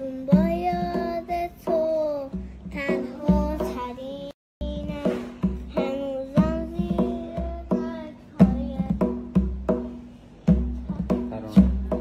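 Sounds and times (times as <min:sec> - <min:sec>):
child singing: 0:00.0 - 0:09.6, 0:10.7 - 0:11.6.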